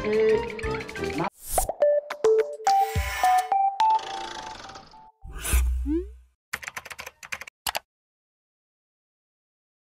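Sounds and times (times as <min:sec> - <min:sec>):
keyboard typing clicks: 0:06.6 - 0:07.9.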